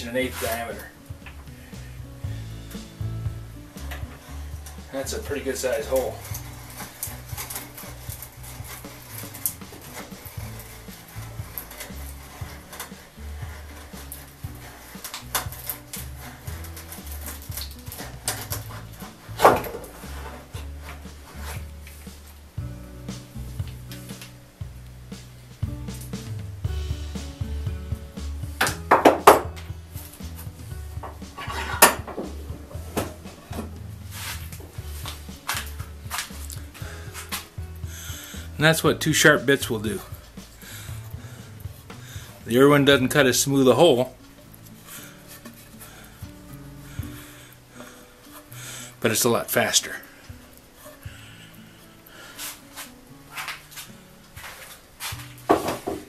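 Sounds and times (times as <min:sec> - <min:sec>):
background music with bass line: 0:00.0 - 0:56.0
wood cracking: 0:00.1 - 0:56.0
hand brace drilling wood: 0:01.4 - 0:22.0.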